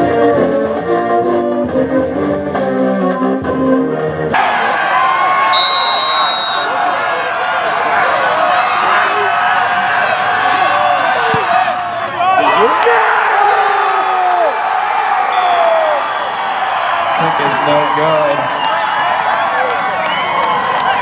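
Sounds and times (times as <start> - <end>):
crowd shouting and cheering: 4.2 - 21.0
short high whistle: 5.6 - 6.7.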